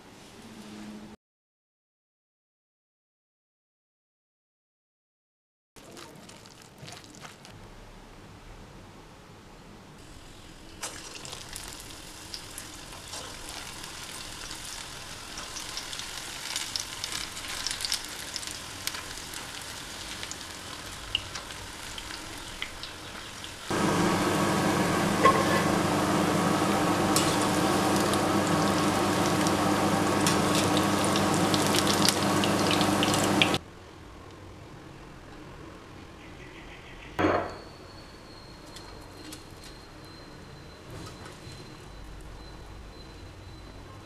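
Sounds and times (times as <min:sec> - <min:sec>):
food deep-frying in oil: 0:10.0 - 0:33.6
loud dense sizzle: 0:10.0 - 0:33.6
steady hum: 0:23.7 - 0:33.6.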